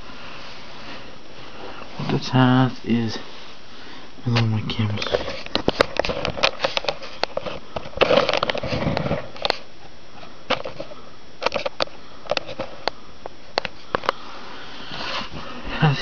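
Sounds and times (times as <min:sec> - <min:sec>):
microphone handling clicks and knocks: 0:04.3 - 0:09.6.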